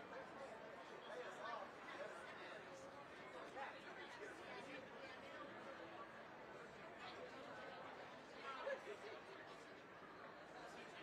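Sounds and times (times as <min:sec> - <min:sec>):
faint chatter of people: 0:00.0 - 0:11.0.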